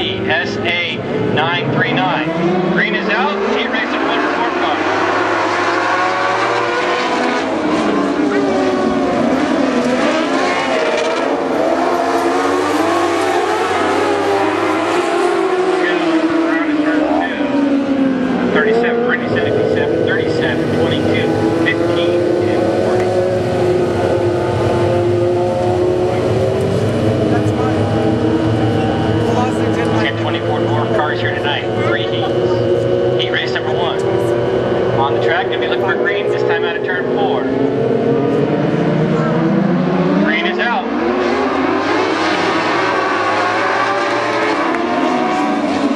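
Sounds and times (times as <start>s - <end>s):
race car engines droning: 0.0s - 45.9s.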